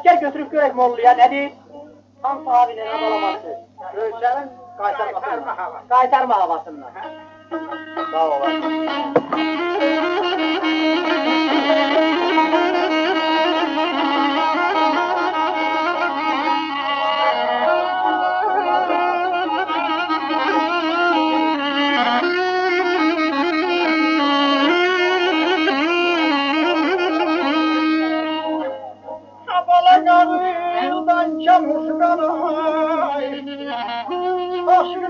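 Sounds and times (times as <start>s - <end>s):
ornamented instrumental melody: 6.9s - 29.4s.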